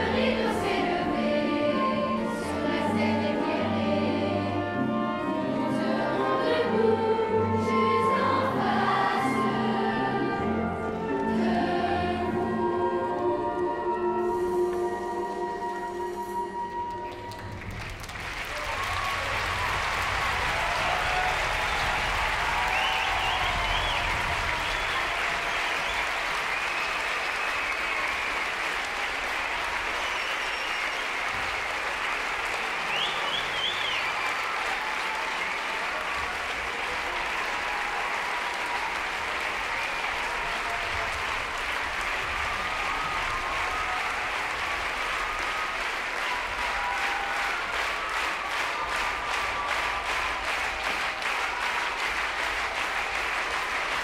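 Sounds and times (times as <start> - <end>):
audience applause: 0.0 - 3.6, 14.2 - 54.0.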